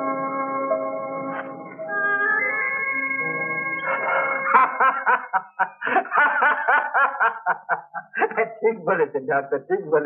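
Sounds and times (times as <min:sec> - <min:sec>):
man laughing heartily: 0:03.8 - 0:08.7.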